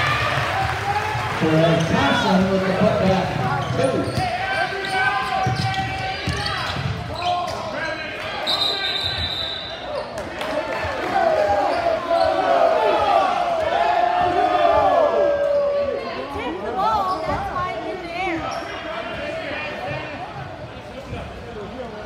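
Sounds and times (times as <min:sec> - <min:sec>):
people shouting in a hall: 0:00.0 - 0:01.4, 0:04.1 - 0:20.3
referee's whistle blast: 0:08.4 - 0:09.9.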